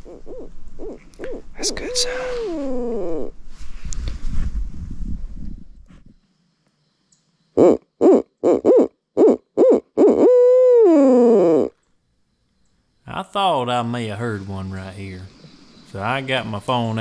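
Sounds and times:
owl hooting: 0:00.0 - 0:03.4, 0:07.6 - 0:11.8
low rumble on microphone: 0:02.4 - 0:06.2.

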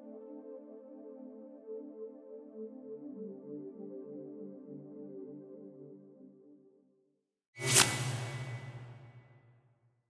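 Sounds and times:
whoosh sound effect: 0:07.6 - 0:09.5
low hum: 0:07.6 - 0:09.6.

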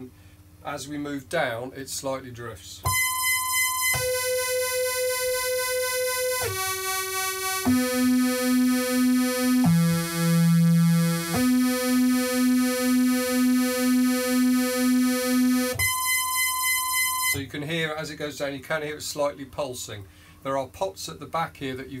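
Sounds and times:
synthesizer playing held notes: 0:02.9 - 0:17.4.

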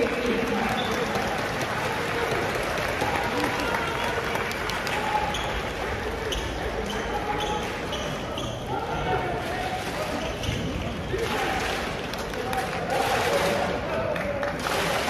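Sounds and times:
crowd chatter: 0:00.0 - 0:15.0
shoe squeaks: 0:05.1 - 0:09.1.

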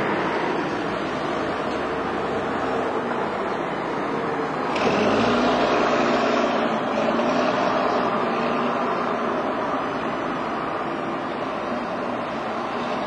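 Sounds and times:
bus diesel engine passing: 0:00.0 - 0:13.0.

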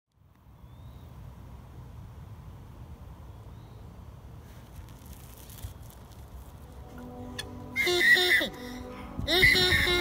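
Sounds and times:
background music held notes: 0:06.4 - 0:10.0
high squawking cry: 0:07.8 - 0:10.0.

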